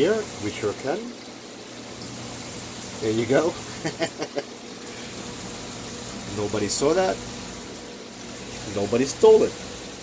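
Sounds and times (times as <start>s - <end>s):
aquarium water bubbling: 0.0s - 10.0s.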